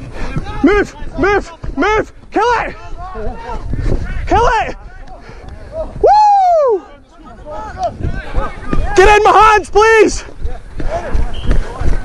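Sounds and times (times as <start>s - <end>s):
wind and movement rumble: 0.0s - 12.0s
man shouting: 0.4s - 3.4s, 4.3s - 4.8s, 8.8s - 10.2s.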